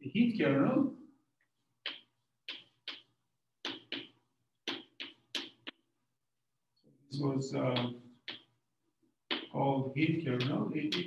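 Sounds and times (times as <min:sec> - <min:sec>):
chalk tapping on blackboard: 0:01.4 - 0:05.9, 0:07.7 - 0:08.6, 0:09.2 - 0:11.0.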